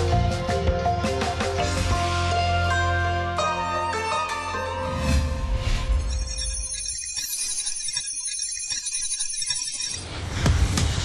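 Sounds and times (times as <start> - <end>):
high sustained tones: 4.7 - 10.1.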